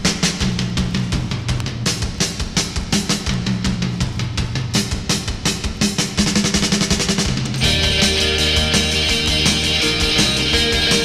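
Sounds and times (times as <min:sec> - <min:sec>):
drum kit beat: 0:00.0 - 0:11.0
low bass notes: 0:07.6 - 0:11.0.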